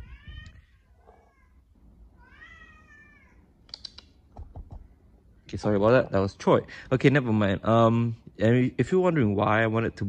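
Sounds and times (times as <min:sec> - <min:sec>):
cat meowing: 0:00.0 - 0:03.5.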